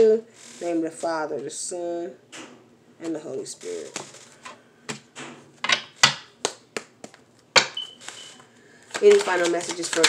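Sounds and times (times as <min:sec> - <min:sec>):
cards being shuffled by hand: 0:08.0 - 0:10.0.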